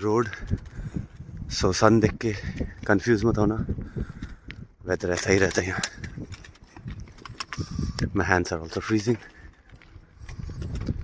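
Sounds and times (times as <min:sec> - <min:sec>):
footsteps on a path: 0:00.0 - 0:11.0.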